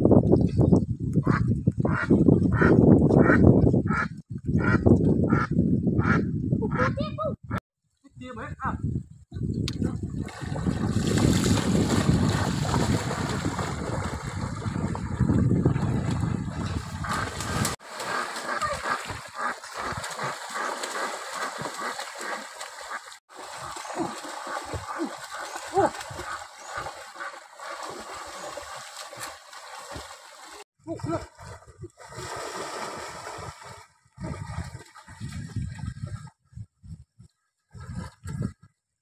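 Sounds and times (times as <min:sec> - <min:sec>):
water splashing and sloshing: 0:09.7 - 0:36.5.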